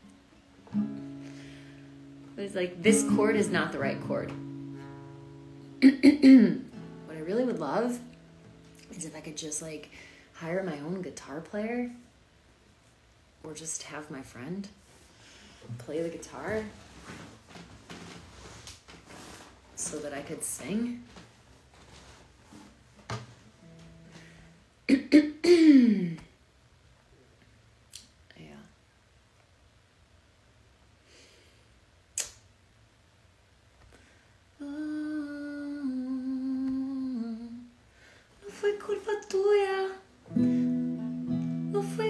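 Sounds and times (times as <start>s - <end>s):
acoustic guitar played softly: 0.0s - 10.9s, 15.6s - 17.9s, 22.5s - 25.4s, 38.5s - 42.0s
woman singing: 2.7s - 4.5s, 34.6s - 37.8s, 38.4s - 40.5s, 41.3s - 42.0s
woman humming: 34.6s - 37.7s.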